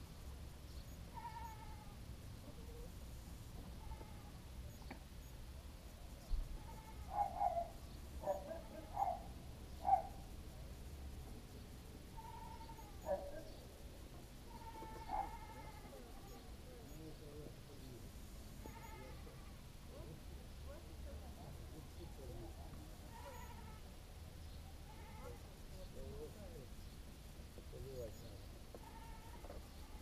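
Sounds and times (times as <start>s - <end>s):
animal bleating calls: 1.1s - 2.0s, 3.7s - 4.4s, 6.5s - 10.1s, 12.1s - 13.3s, 14.5s - 16.6s, 18.6s - 19.7s, 23.1s - 23.9s, 24.8s - 25.5s, 28.8s - 30.0s.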